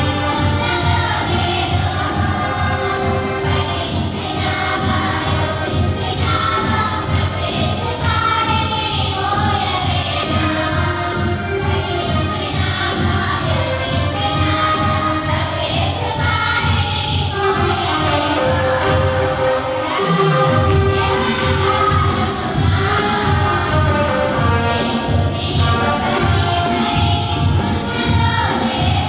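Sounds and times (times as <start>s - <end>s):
electronic drums beat: 0.0s - 29.0s
electronic keyboard: 0.0s - 29.0s
women singing together: 0.0s - 29.0s.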